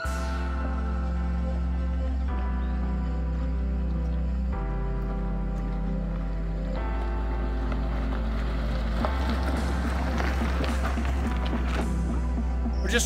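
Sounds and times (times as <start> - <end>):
background music with bass chords: 0.0 - 13.0.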